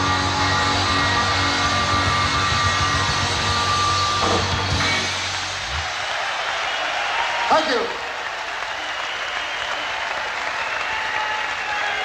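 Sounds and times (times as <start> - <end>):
blues-rock band playing: 0.0 - 6.0
crowd applause: 0.0 - 12.0.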